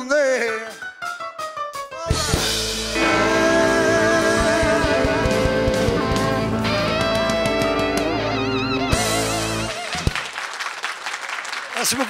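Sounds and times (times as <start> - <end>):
country band playing: 0.1 - 10.2.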